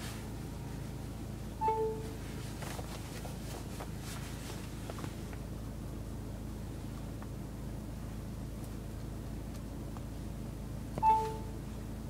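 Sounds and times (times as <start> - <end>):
low car cabin hum: 0.0 - 12.0
two-tone electronic chime: 11.0 - 11.5.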